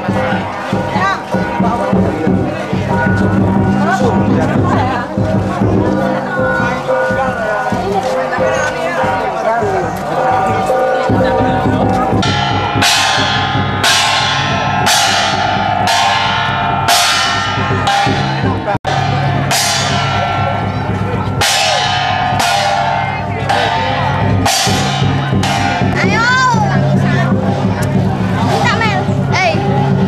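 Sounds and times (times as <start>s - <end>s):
large drum beating: 0.0s - 30.0s
cymbal crashes: 11.5s - 30.0s.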